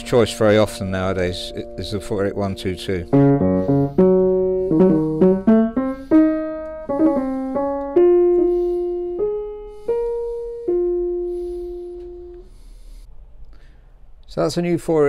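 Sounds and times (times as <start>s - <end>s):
upright piano notes: 0.0s - 12.7s.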